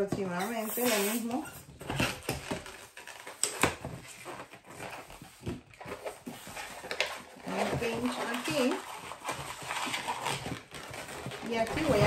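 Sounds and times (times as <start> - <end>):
balloon squeaking and rubbing: 4.0 - 12.0.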